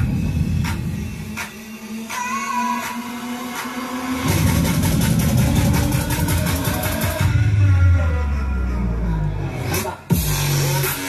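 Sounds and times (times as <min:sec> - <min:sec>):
music with heavy bass and fast beat: 0:00.0 - 0:11.0.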